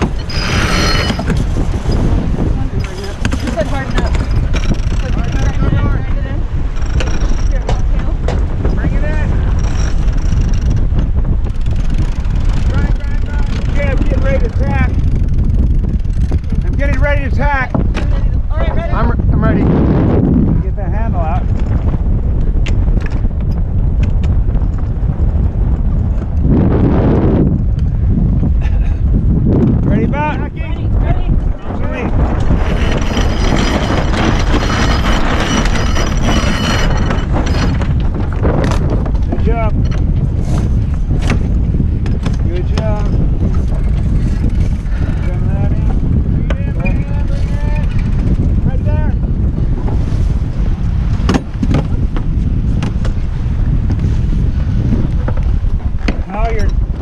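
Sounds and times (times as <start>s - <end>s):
winch whirring: 0.0s - 8.0s, 31.7s - 39.0s
water rushing along hull: 0.0s - 57.0s
wind buffeting microphone: 0.0s - 57.0s.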